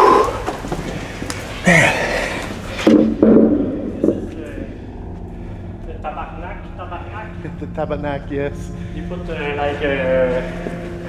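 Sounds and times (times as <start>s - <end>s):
men talking indistinctly: 3.7s - 5.0s, 5.8s - 11.0s.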